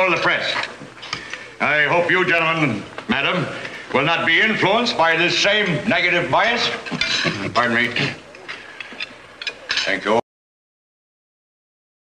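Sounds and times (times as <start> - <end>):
man speaking: 1.6 - 8.4, 9.7 - 10.2.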